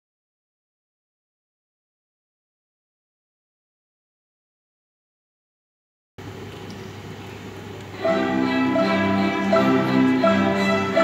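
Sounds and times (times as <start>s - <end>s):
string ensemble playing: 7.9s - 11.0s.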